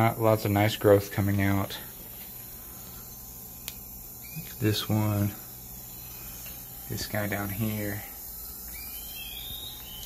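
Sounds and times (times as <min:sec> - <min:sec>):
insect chorus: 0:00.0 - 0:10.0
low steady hum: 0:00.0 - 0:10.0
sharp click: 0:03.6 - 0:03.8.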